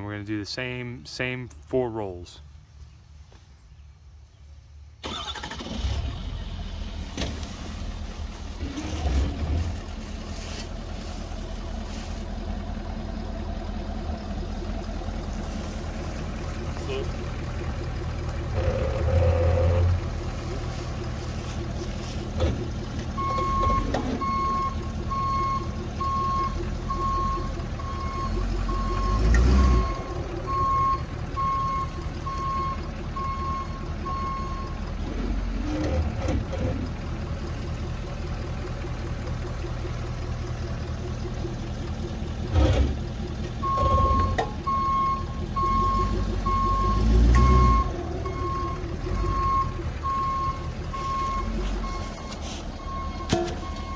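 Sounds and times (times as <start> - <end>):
pickup truck engine running: 5.0 - 53.9
backup alarm beeping: 23.2 - 34.8, 43.6 - 53.9.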